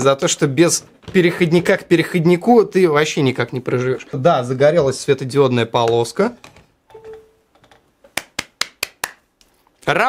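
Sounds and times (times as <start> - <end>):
phone charging chime: 6.9 - 7.4.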